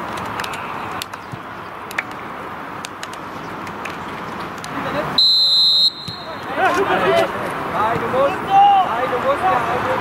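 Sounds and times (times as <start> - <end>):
referee's whistle blast: 5.2 - 6.4.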